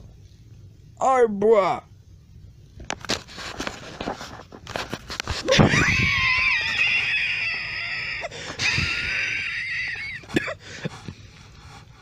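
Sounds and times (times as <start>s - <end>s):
high-pitched scream: 5.6s - 8.3s.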